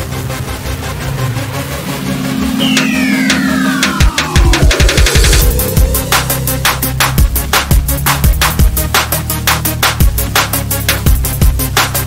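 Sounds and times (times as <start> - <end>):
descending sweep effect: 0.9 - 7.6
held low synth note: 1.5 - 7.4
sharp hits: 1.8 - 7.7.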